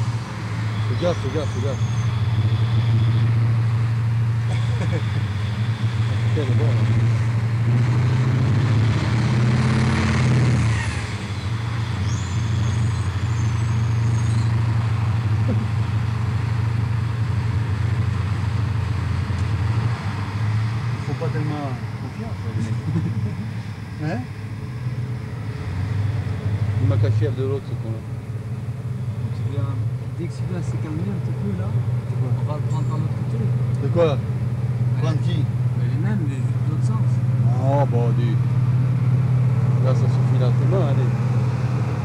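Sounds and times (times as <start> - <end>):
diesel truck engine droning: 0.0 - 42.0.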